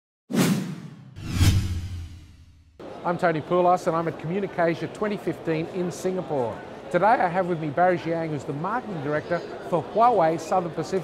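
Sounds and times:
whoosh: 0:00.3 - 0:02.8
deep rumble: 0:01.2 - 0:02.7.

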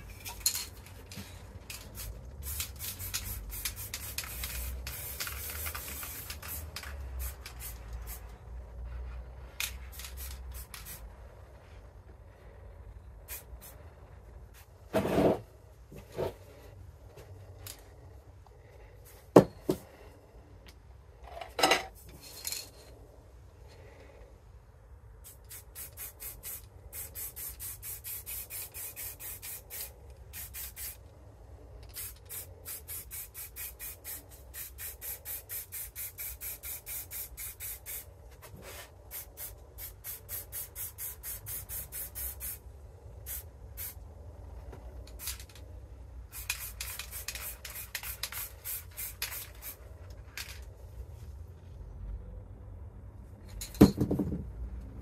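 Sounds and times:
spray paint can hissing: 0:01.7 - 0:08.3, 0:09.5 - 0:11.1, 0:13.2 - 0:13.8, 0:25.2 - 0:31.0, 0:31.8 - 0:42.6, 0:43.2 - 0:44.0, 0:46.2 - 0:49.9.

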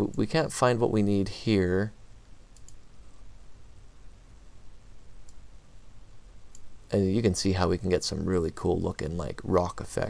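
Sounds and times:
low steady hum: 0:00.0 - 0:10.0
computer mouse clicks: 0:02.5 - 0:02.9, 0:05.2 - 0:05.5, 0:06.5 - 0:06.7.

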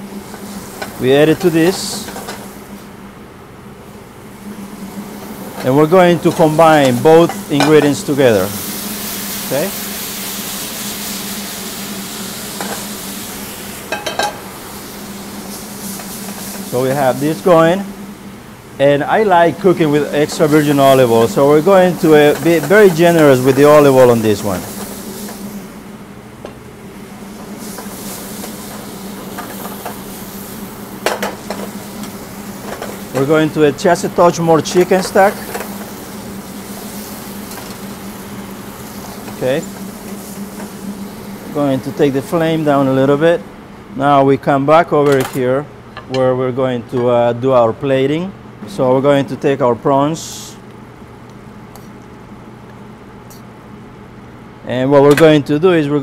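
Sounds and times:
food sizzling in a pan: 0:00.0 - 0:02.9, 0:04.2 - 0:26.0, 0:26.6 - 0:43.2
steady low hum: 0:00.0 - 0:56.0.

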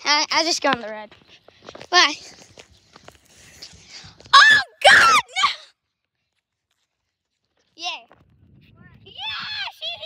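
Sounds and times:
child shouting: 0:04.3 - 0:05.7, 0:09.1 - 0:10.0
child crying out: 0:04.4 - 0:05.6.

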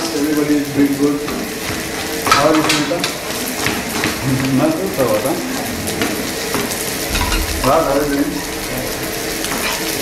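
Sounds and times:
food sizzling: 0:00.0 - 0:10.0
utensils clicking and clattering: 0:00.0 - 0:10.0.

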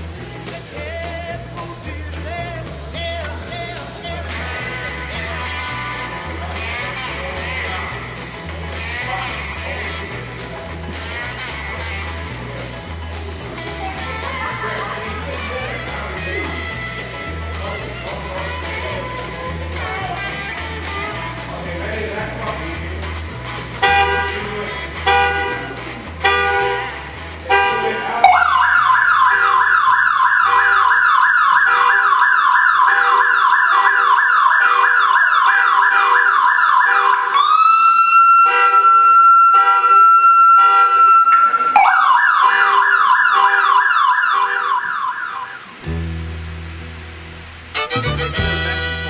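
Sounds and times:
background music with a beat: 0:00.0 - 0:30.3, 0:47.7 - 0:49.0
electronic siren yelping: 0:28.2 - 0:45.9.

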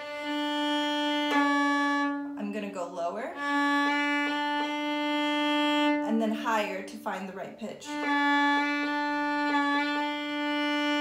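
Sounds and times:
violin long bowed note: 0:00.0 - 0:06.8, 0:07.7 - 0:11.0.

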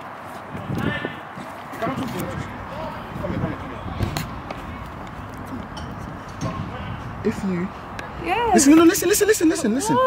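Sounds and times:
outdoor background noise: 0:00.0 - 0:10.0
faint voices: 0:00.5 - 0:10.0.

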